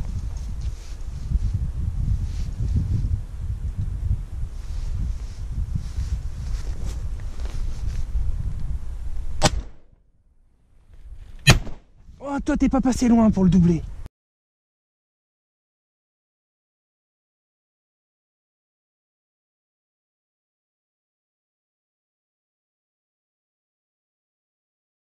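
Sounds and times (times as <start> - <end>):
low rumbling microphone noise: 0.0 - 9.8
shotgun shots: 9.4 - 9.9, 11.4 - 11.9.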